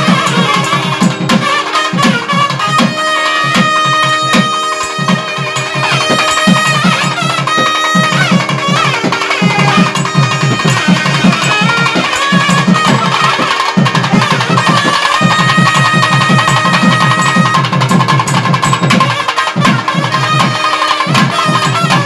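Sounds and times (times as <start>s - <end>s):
barrel drums beating fast: 0.0s - 22.0s
reed melody: 0.0s - 22.0s.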